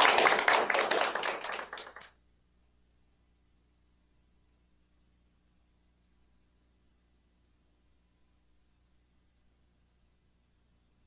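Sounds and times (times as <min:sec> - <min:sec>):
audience applauding: 0:00.0 - 0:02.1.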